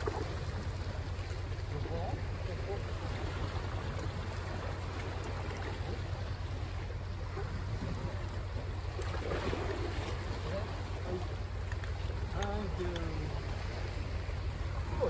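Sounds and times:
sea waves washing ashore: 0.0s - 15.0s.

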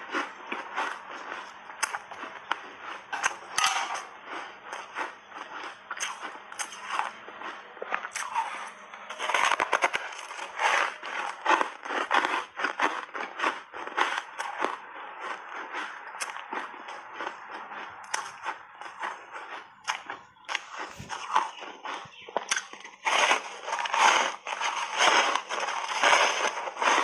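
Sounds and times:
crunching and chewing ice: 0.0s - 27.0s.

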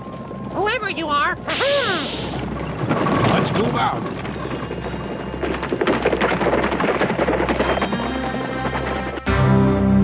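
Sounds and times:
soundtrack score: 6.4s - 10.0s.

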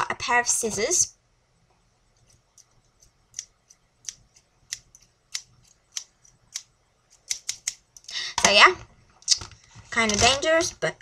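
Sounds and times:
scissors snipping: 2.5s - 7.8s.

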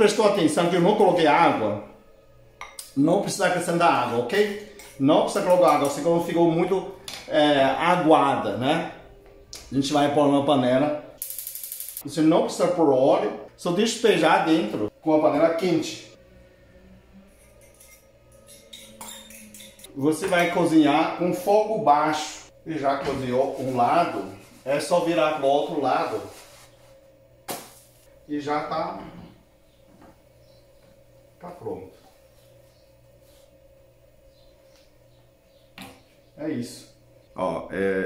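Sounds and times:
steady low hum: 0.6s - 38.0s.

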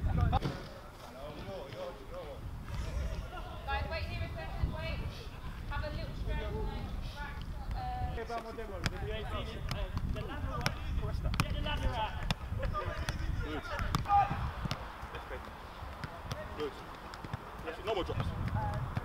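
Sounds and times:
players' voices: 0.0s - 19.0s
football kick thuds: 8.8s - 15.0s, 15.9s - 19.0s.

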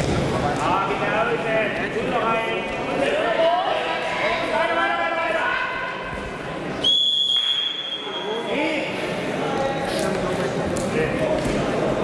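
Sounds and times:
referee's whistle long blast: 6.8s - 8.4s.

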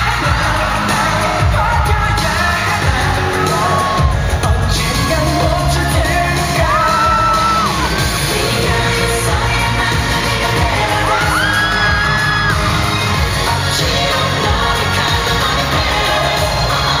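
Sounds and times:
pop dance music with singing: 0.0s - 17.0s.

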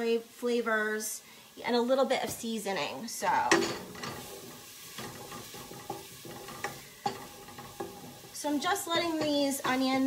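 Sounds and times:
onions and garlic sizzling: 0.0s - 10.0s
wooden spoon knocking on pot: 5.0s - 10.0s.

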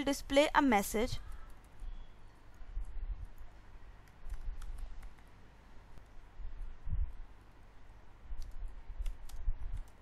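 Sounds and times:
low room rumble: 0.0s - 10.0s
computer keyboard keystrokes: 4.0s - 5.3s, 8.4s - 10.0s.

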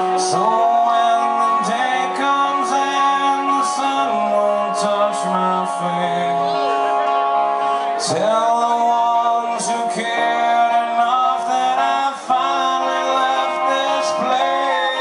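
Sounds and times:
electric guitar: 0.0s - 15.0s
man singing: 0.0s - 15.0s.

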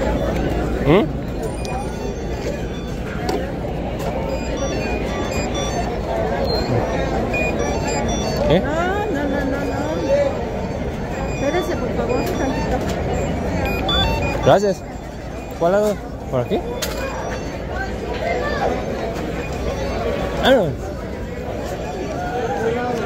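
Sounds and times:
crowd babble of voices: 0.0s - 23.0s.

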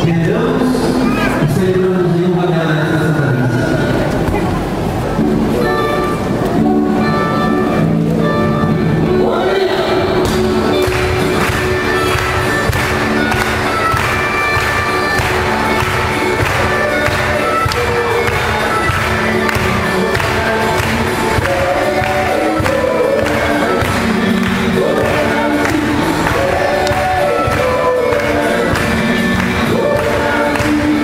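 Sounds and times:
group singing a hymn: 9.2s - 31.0s
instrumental accompaniment with beat: 10.2s - 31.0s.

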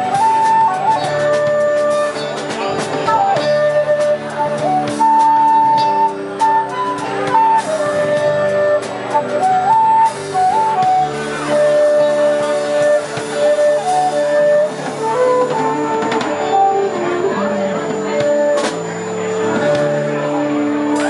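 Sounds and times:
electric bass: 0.0s - 21.0s
flute blues solo: 0.0s - 21.0s
guitar accompaniment: 0.0s - 21.0s.

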